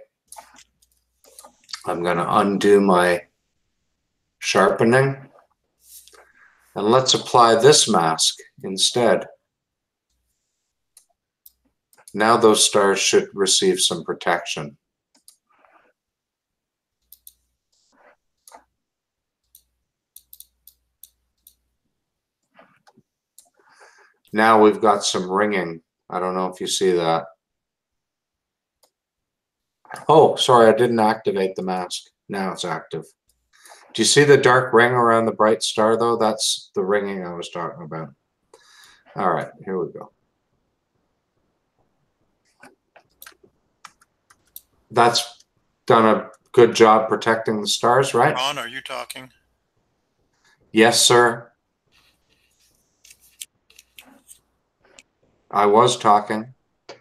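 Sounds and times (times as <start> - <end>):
computer mouse clicks: 15.2 - 15.5, 17.0 - 18.7, 19.4 - 21.6.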